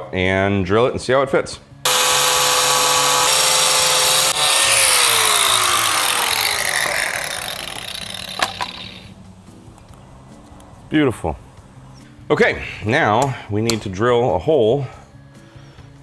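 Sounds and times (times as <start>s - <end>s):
angle grinder cutting plastic: 1.9s - 9.1s.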